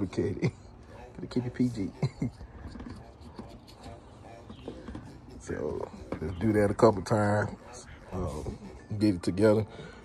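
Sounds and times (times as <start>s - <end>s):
finger rubbing rubber gasket: 0.8s - 9.3s.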